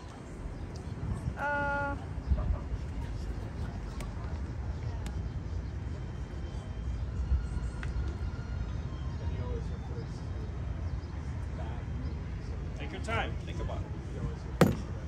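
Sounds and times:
wind rumbling on microphone: 0:00.0 - 0:05.4.

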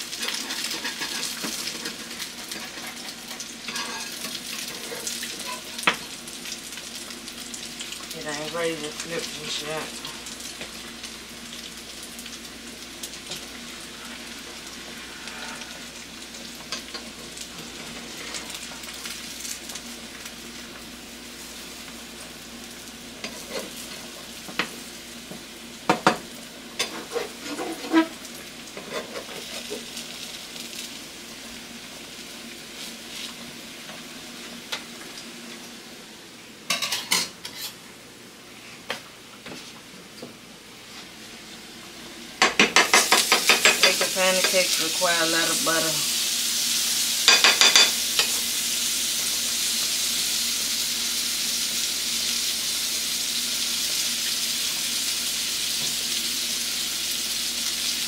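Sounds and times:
food sizzling in a frying pan: 0:00.0 - 0:58.0.

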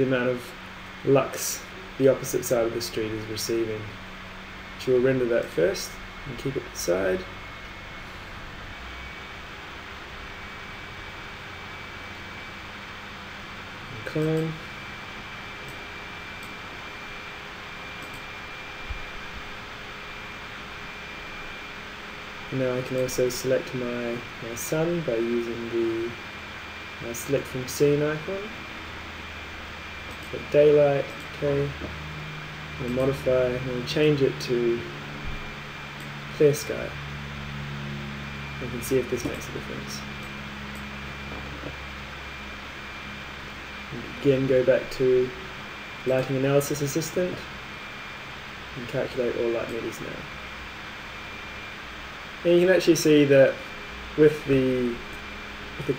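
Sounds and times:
background hiss and hum: 0:00.0 - 0:55.9.

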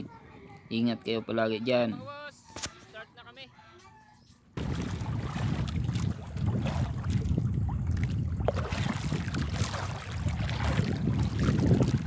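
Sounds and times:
choppy sea washing: 0:04.6 - 0:12.0
wind rumbling on microphone: 0:04.6 - 0:12.0.

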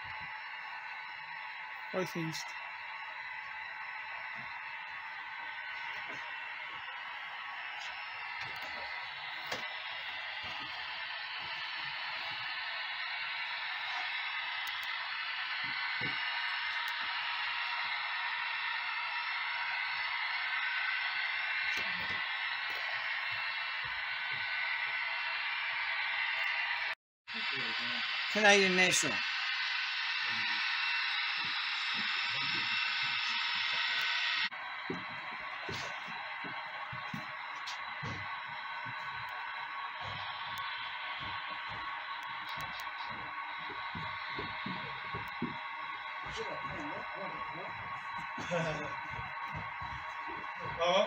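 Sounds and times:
model train running on rails: 0:00.3 - 0:51.0.

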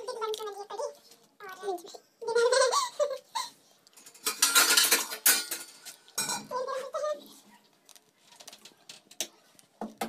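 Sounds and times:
kitchen utensils clicking: 0:04.0 - 0:06.6.

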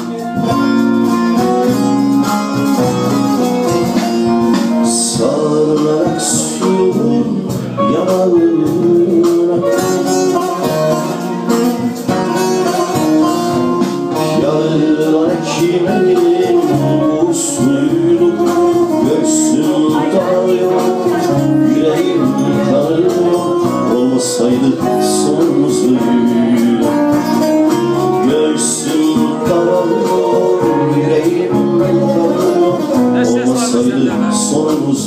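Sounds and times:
man singing into a microphone: 0:00.0 - 0:02.8, 0:03.6 - 0:35.0
instrumental accompaniment: 0:00.0 - 0:35.0.

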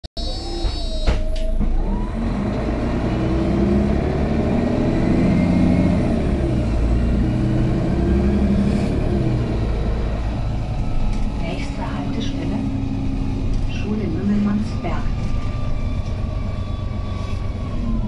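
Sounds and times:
bus diesel engine accelerating: 0:00.2 - 0:18.0.

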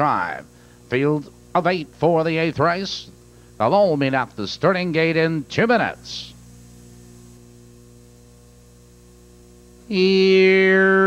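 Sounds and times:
person speaking: 0:00.0 - 0:06.4, 0:09.9 - 0:11.0
electrical mains hum: 0:00.0 - 0:11.0.

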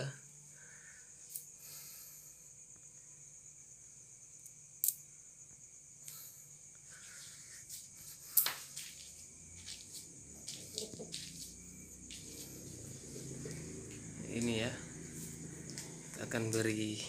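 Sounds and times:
faint low hum: 0:00.0 - 0:17.0
night insects trilling: 0:00.0 - 0:17.0.

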